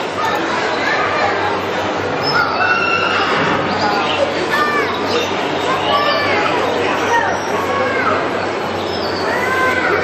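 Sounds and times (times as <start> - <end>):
crowd chatter in echoing hall: 0.0 - 10.0.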